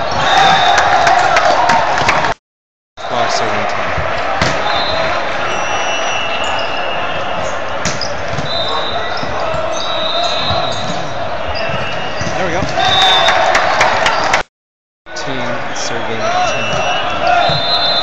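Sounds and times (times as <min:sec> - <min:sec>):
hubbub of voices: 0:03.0 - 0:14.4
sneakers squeaking on floor: 0:04.6 - 0:13.3, 0:16.4 - 0:18.0.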